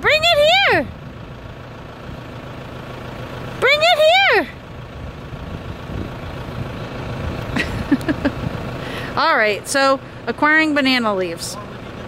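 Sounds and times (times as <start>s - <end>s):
low engine hum: 0.0s - 12.0s.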